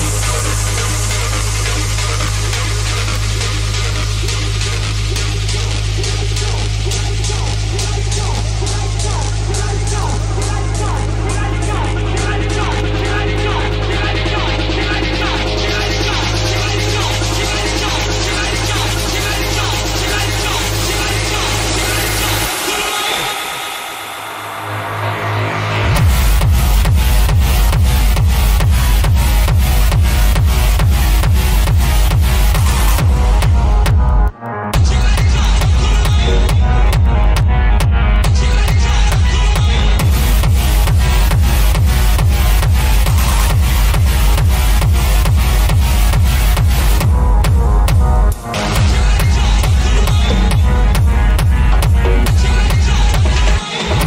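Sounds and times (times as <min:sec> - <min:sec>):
acid techno music: 0:00.0 - 0:54.0
kick drum: 0:26.0 - 0:54.0.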